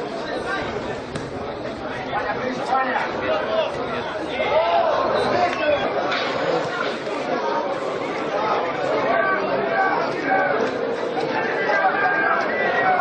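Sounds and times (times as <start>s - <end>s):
indistinct chatter of voices: 0.0s - 13.0s.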